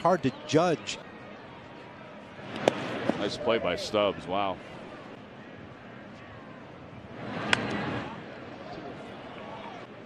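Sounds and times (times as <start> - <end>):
crowd murmuring: 0.0 - 10.0.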